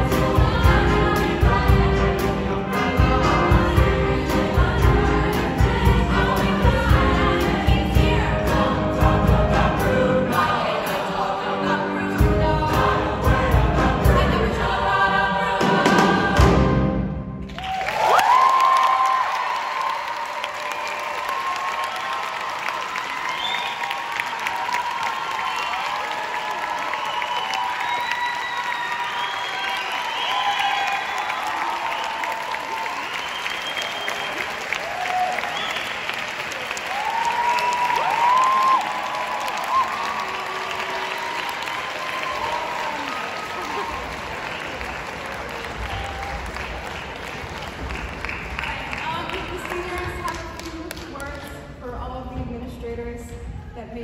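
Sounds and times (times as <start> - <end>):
choir singing with piano and band: 0.0 - 17.6, 23.2 - 48.4
audience applause: 17.4 - 51.4
cheers and whoops: 17.5 - 46.8.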